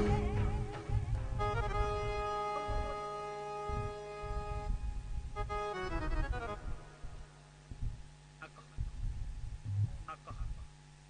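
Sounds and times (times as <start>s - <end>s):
low drum thud: 0.0s - 2.0s, 6.6s - 8.0s
keyboard accordion-like chord: 0.0s - 7.5s.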